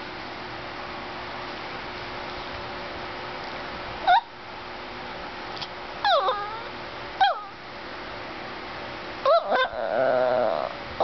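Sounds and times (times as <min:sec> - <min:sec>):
dog yowling: 0:04.1 - 0:04.3, 0:06.0 - 0:07.6, 0:09.2 - 0:10.8.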